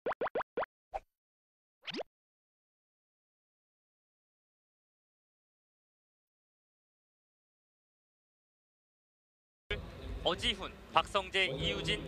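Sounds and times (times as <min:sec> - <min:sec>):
cartoon pops rising in pitch: 0:00.0 - 0:01.0, 0:01.8 - 0:02.1.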